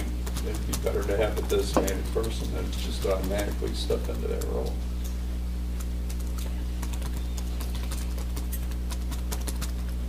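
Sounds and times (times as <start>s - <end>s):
steady low hum: 0.0s - 10.0s
light clicks and taps: 0.3s - 5.2s.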